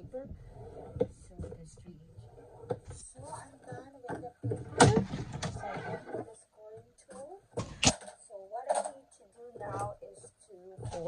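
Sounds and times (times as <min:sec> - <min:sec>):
paper slap: 0:07.6 - 0:08.0
woman murmuring: 0:08.3 - 0:11.0.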